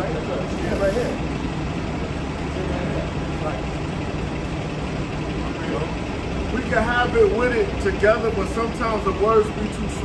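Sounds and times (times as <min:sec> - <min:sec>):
city noise: 0:00.0 - 0:10.0
traffic engine hum: 0:00.0 - 0:10.0.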